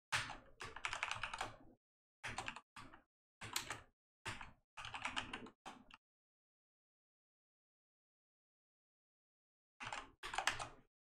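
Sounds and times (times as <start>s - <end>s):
typing on computer keyboard: 0.2s - 1.6s, 2.2s - 6.0s, 9.8s - 10.8s.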